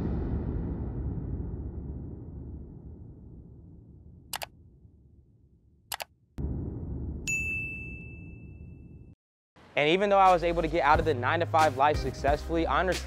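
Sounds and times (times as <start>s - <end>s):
low rumbling boom: 0.0s - 9.2s
notification bell ding: 7.3s - 8.8s.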